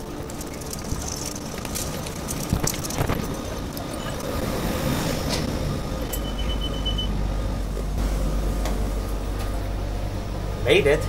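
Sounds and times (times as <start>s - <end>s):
low train hum: 0.0s - 11.0s
high beep: 6.1s - 7.1s.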